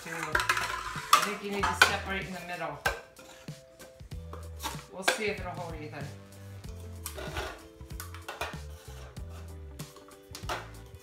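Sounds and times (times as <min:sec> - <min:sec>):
metal cookie sheet clatter: 0:00.0 - 0:03.0
plastic cups knocking: 0:00.0 - 0:03.1, 0:07.0 - 0:09.1, 0:09.9 - 0:10.8
quiet background music: 0:00.0 - 0:11.0.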